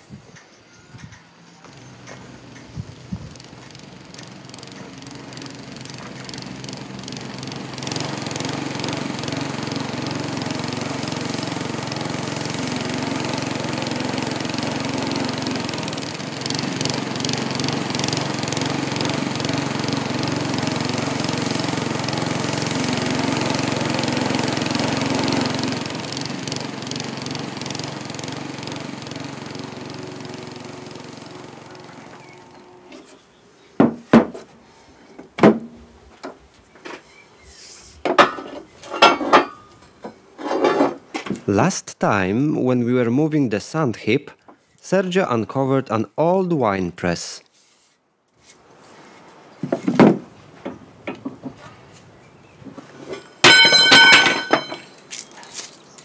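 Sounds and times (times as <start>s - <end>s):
lawn mower cutting grass: 1.4s - 33.3s, 52.7s - 56.0s.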